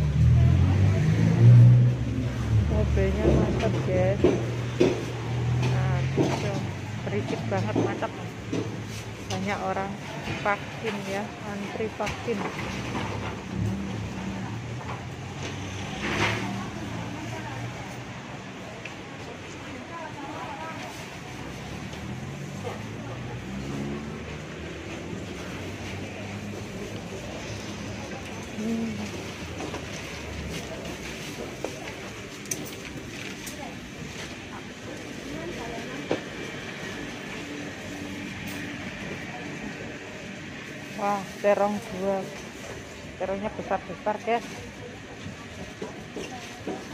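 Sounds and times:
murmur of distant voices: 0:00.0 - 0:46.9.

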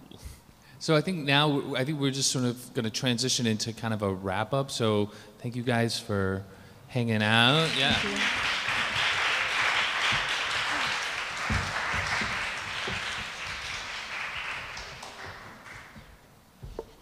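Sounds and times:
audience applauding: 0:07.4 - 0:16.2.

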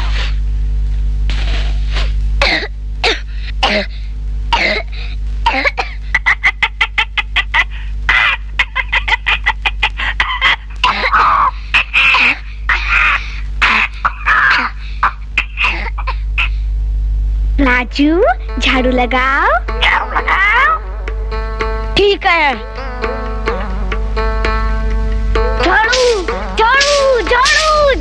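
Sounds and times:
steady low hum: 0:00.0 - 0:28.0
cartoon parrot coughing and squawking: 0:05.6 - 0:16.6, 0:25.6 - 0:28.0
background music: 0:18.1 - 0:28.0.

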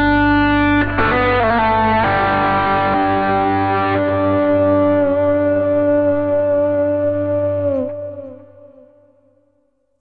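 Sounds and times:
electric guitar sustained note: 0:00.0 - 0:08.9.

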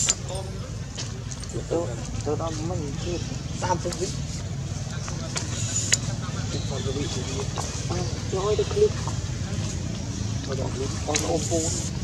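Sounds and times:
low motor rumble: 0:00.0 - 0:12.0.

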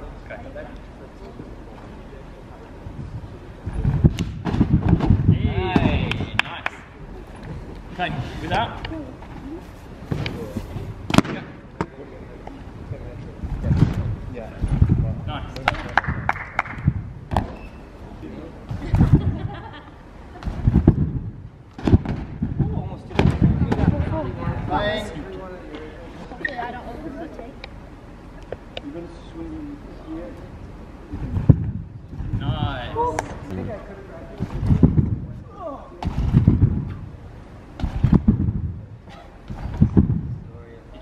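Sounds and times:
trampoline thumping: 0:03.0 - 0:06.6, 0:10.0 - 0:11.9, 0:13.5 - 0:17.8, 0:18.6 - 0:19.8, 0:20.4 - 0:24.9, 0:31.2 - 0:33.4, 0:34.4 - 0:40.5
people talking: 0:05.3 - 0:06.8, 0:32.4 - 0:34.5.

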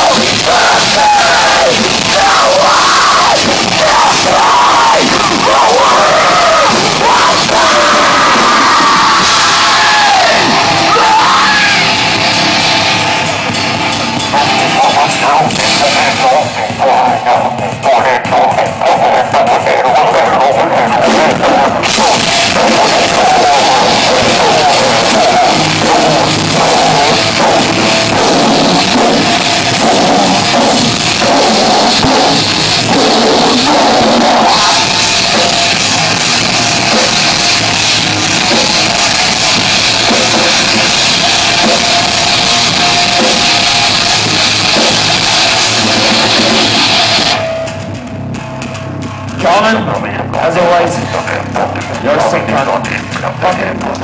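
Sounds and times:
live rock band playing loud: 0:00.0 - 0:54.0.

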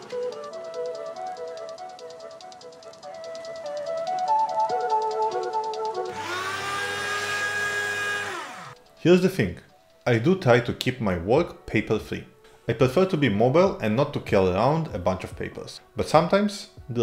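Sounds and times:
background music: 0:00.0 - 0:17.0
paper being shredded: 0:06.1 - 0:08.8
paper shredder motor whine: 0:06.1 - 0:08.8.

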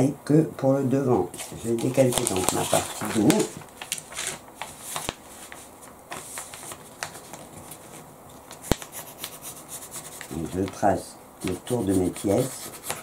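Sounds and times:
tracing paper rustling: 0:01.3 - 0:13.0.

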